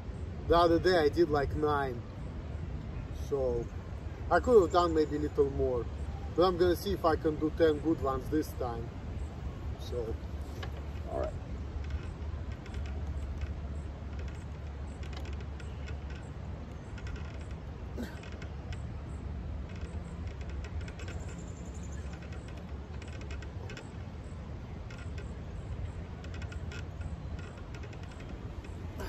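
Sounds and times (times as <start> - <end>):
metal bar creaking: 6.4 - 29.0.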